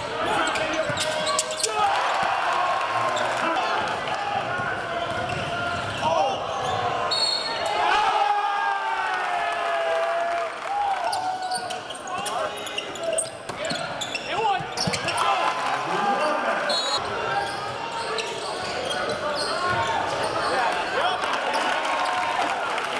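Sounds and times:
shoe squeaks and clicks: 0.3s - 1.8s, 11.1s - 15.3s, 16.7s - 20.6s.

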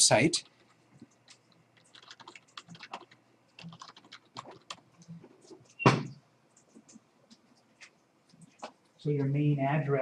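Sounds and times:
computer keyboard typing: 0.4s - 5.8s.

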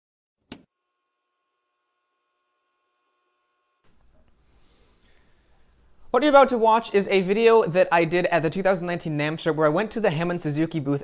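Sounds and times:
faint steady electronic tone: 0.7s - 4.5s.

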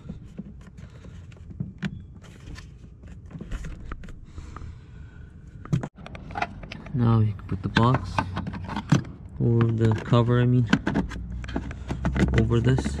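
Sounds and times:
hard plastic clicks and rustles: 5.6s - 13.0s.

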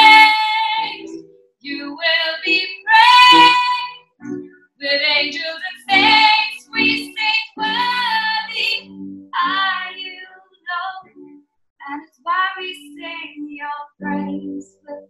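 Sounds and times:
woman singing: 0.0s - 4.0s, 4.8s - 8.8s, 9.4s - 11.1s, 11.8s - 15.0s
piano accompaniment: 0.0s - 11.4s, 14.0s - 15.0s.

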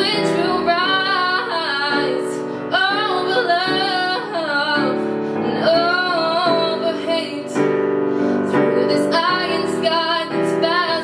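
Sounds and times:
digital piano chords: 0.0s - 11.0s
woman singing: 0.0s - 11.0s.

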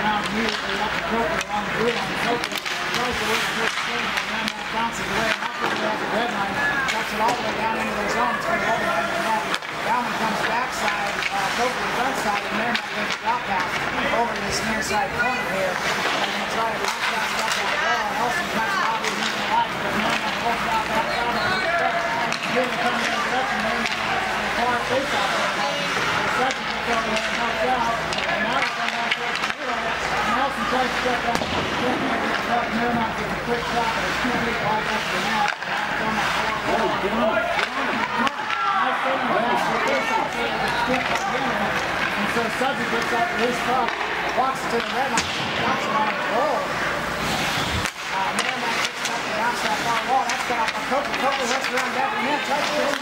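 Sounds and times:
spectators talking: 0.0s - 53.0s.

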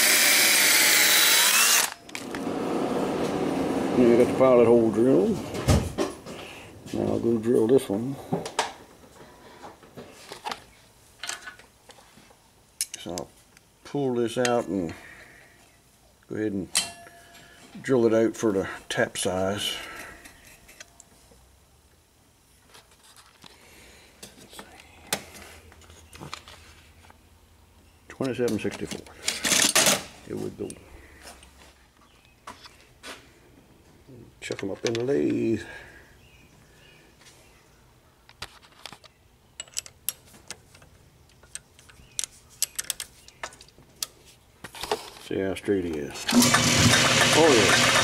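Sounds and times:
drill bits clicking and rattling: 0.0s - 2.4s, 29.2s - 30.0s, 46.2s - 48.0s
metal clicks and clinks: 39.6s - 43.4s.

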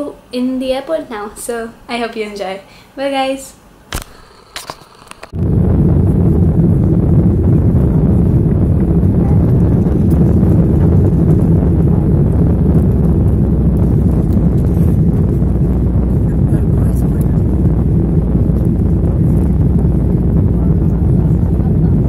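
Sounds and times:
jet engines roaring in cabin: 5.1s - 22.0s.

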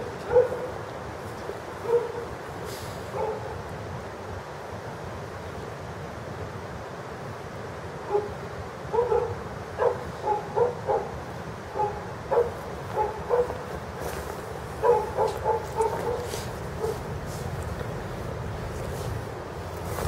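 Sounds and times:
dog barking: 0.2s - 0.8s, 1.8s - 2.3s, 3.1s - 3.6s, 8.0s - 13.7s, 14.8s - 17.1s.

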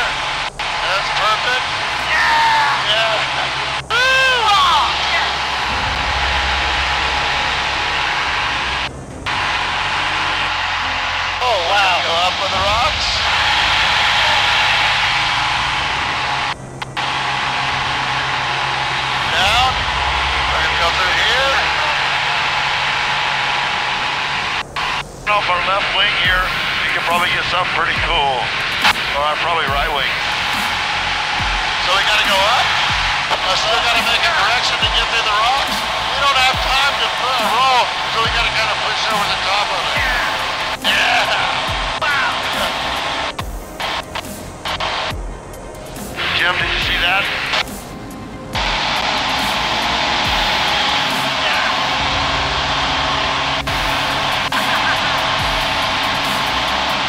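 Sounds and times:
airplane engine and propeller drone: 0.0s - 57.0s.

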